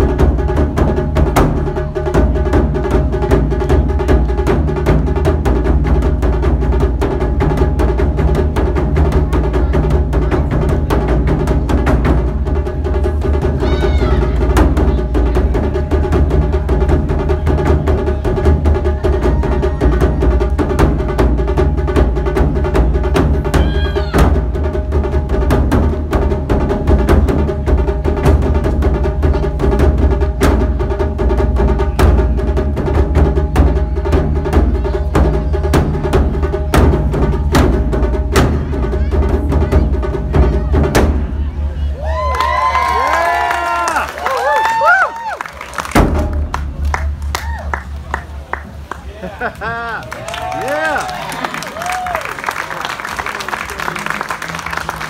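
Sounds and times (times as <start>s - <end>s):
taiko drums ensemble: 0.0s - 48.9s.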